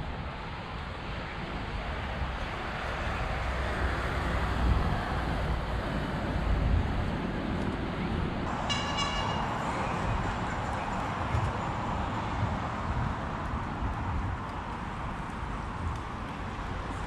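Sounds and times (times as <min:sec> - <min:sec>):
road traffic: 0:00.0 - 0:17.0
wind rumble on microphone: 0:00.0 - 0:17.0
high-pitched tone: 0:08.5 - 0:09.7.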